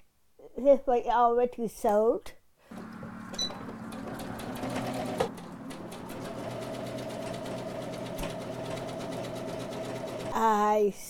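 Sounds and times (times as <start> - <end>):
electric sewing machine stitching: 2.7 - 10.5.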